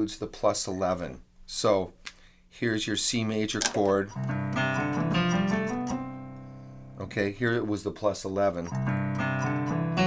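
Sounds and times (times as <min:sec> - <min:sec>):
keyboard chord: 0:04.1 - 0:07.0, 0:08.7 - 0:10.0.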